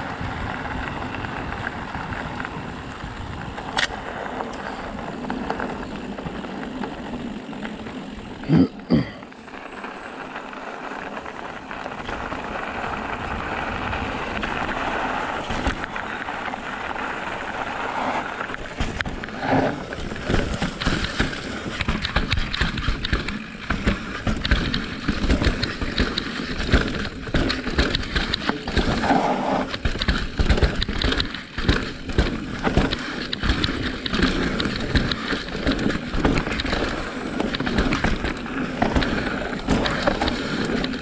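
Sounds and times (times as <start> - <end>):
bike knocking and rattling: 0.0 - 41.0
tyre and wind noise: 0.0 - 41.0.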